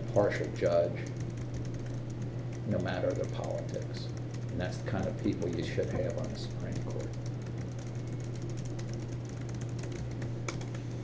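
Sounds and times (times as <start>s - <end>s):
low room hum: 0.0s - 11.0s
typing on computer keyboard: 0.4s - 10.8s.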